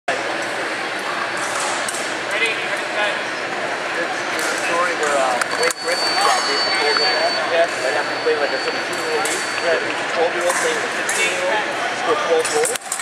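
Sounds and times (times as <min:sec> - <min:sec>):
murmur of many voices: 0:00.1 - 0:13.0
thin high tone: 0:04.6 - 0:11.5.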